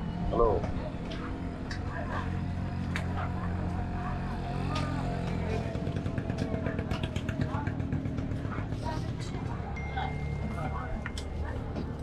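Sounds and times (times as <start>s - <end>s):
motorcycle engine revving: 0.0s - 9.6s.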